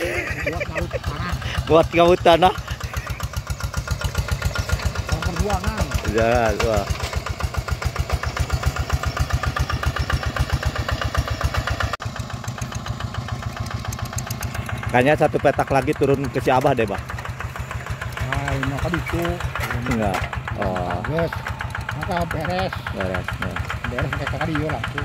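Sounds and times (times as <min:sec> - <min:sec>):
diesel engine chugging: 0:00.0 - 0:25.0.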